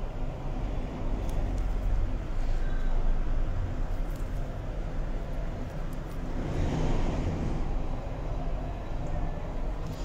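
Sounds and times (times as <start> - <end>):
low rumbling background noise: 0.0 - 10.0.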